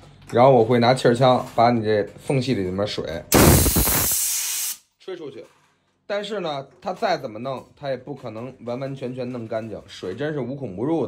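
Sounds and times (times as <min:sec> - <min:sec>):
compressed air blast hissing: 0:03.3 - 0:04.8.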